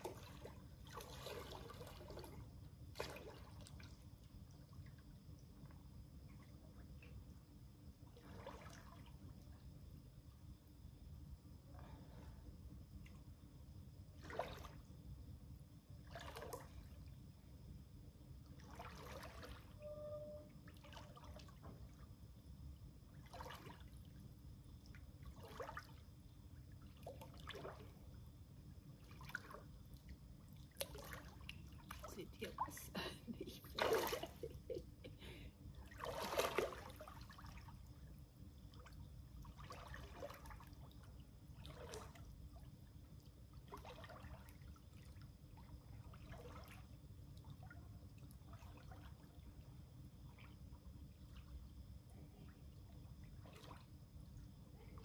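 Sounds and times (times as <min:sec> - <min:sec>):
water splashing from swimming: 0:00.0 - 0:05.0, 0:08.0 - 0:09.4, 0:14.2 - 0:14.9, 0:16.0 - 0:17.1, 0:18.5 - 0:19.8, 0:20.6 - 0:22.0, 0:23.2 - 0:24.2, 0:24.8 - 0:26.1, 0:26.8 - 0:28.2, 0:29.0 - 0:38.0, 0:38.6 - 0:55.0.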